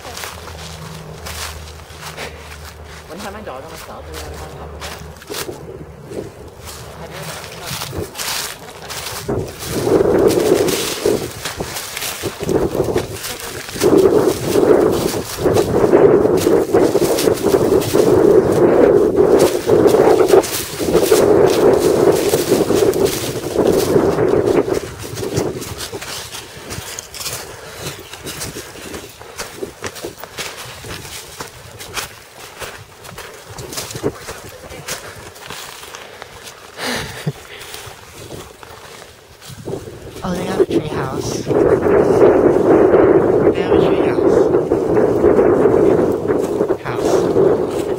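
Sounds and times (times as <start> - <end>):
twigs clicking and snapping: 0.0 - 40.2
footsteps crunching on dry leaves: 0.0 - 47.9
muffled voice: 40.2 - 41.5, 43.5 - 44.5, 46.7 - 47.4.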